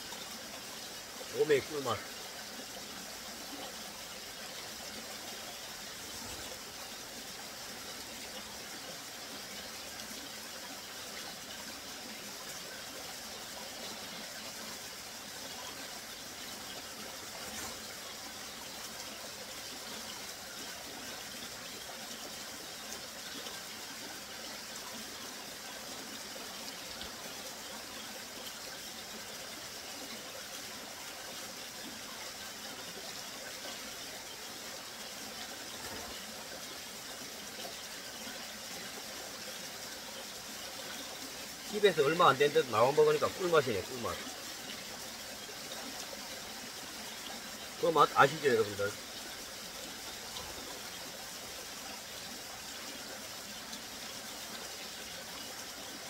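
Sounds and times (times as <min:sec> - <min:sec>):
stream running over rocks: 0:00.0 - 0:56.0.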